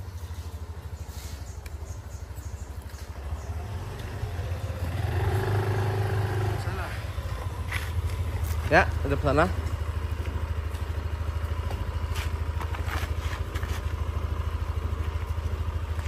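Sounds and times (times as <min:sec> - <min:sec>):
scooter engine running: 0:00.0 - 0:16.0.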